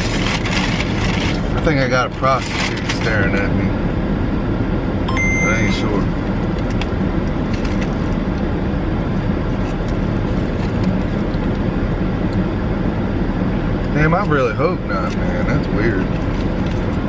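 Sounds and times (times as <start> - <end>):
car air conditioning blower: 0.0 - 17.0
car engine idling: 0.0 - 17.0.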